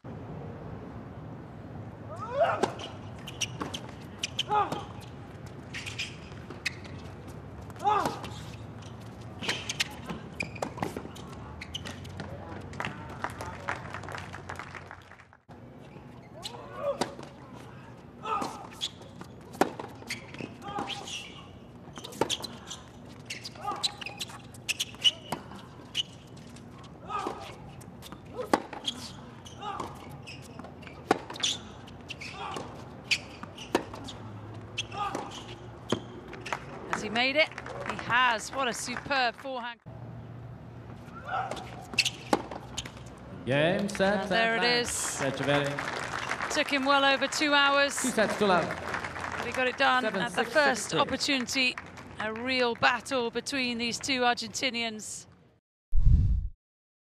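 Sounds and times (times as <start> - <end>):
tennis ball bouncing: 18.4 - 21.0, 27.2 - 29.1, 29.7 - 37.1, 40.9 - 43.1
racket striking tennis ball: 41.3 - 42.8.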